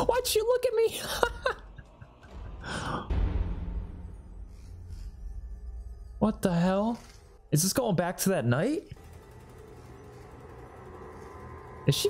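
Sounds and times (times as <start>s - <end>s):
horror film score drone: 0.0s - 12.0s.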